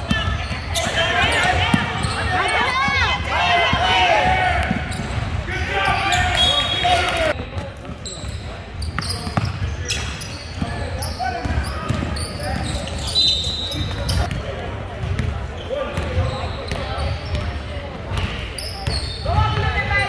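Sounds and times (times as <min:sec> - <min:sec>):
sneakers squeaking: 0:00.0 - 0:20.0
voices of players and spectators: 0:00.0 - 0:20.0.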